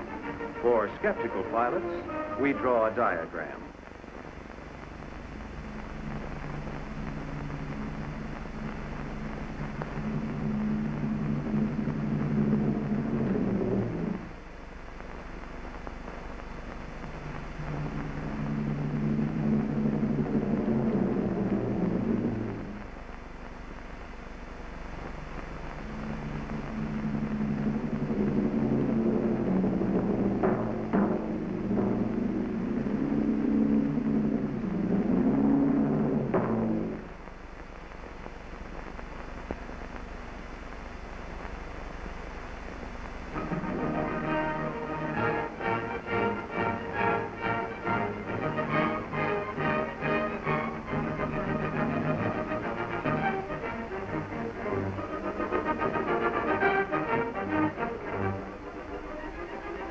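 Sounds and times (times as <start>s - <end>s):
film music: 0.0s - 14.4s, 16.8s - 23.0s, 24.8s - 37.1s, 43.3s - 59.9s
propeller plane engine droning: 0.0s - 37.3s, 41.8s - 59.9s.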